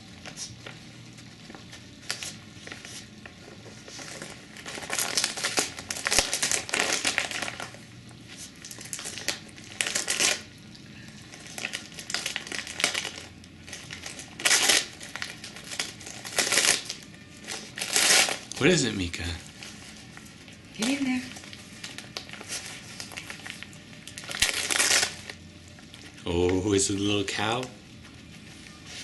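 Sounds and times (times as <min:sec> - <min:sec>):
wrapping paper crinkling: 0:00.0 - 0:29.0.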